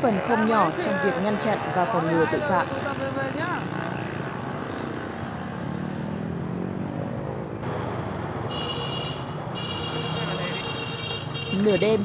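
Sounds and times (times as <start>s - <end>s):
motorbike and scooter traffic: 0.0s - 12.0s.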